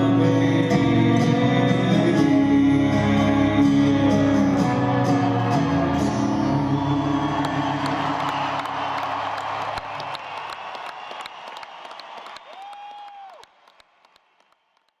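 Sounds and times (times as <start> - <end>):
audience applauding and cheering: 5.4 - 15.0
long whistle from crowd: 6.5 - 9.3.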